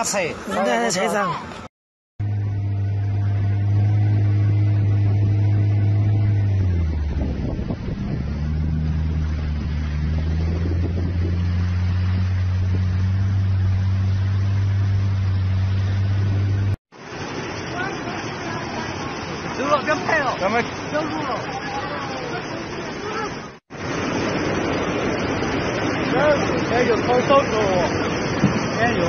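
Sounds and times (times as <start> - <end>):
engine running with low hum: 2.2 - 19.6.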